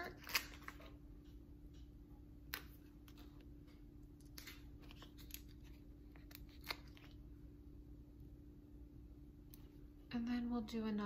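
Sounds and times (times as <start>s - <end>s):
steady low hum: 0.0s - 11.0s
sticker sheets rustling: 4.2s - 7.2s.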